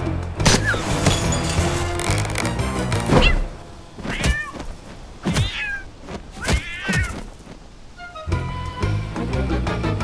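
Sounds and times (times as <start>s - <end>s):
cat meowing: 4.1s - 4.6s, 5.3s - 7.2s.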